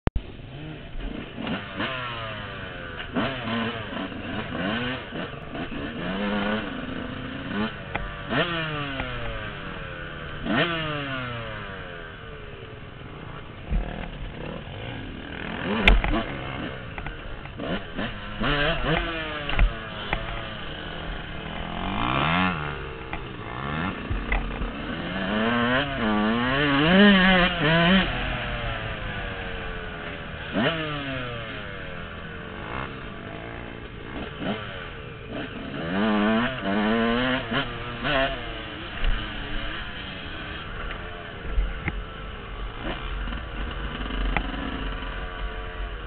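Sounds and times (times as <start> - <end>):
dirt bike engine revving: 0.2 - 46.0
knocks from bike over bumps: 15.6 - 20.5.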